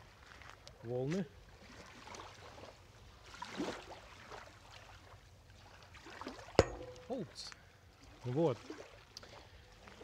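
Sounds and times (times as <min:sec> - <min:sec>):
small waves lapping against a pier: 0:00.0 - 0:10.0
water slosh: 0:01.6 - 0:07.4.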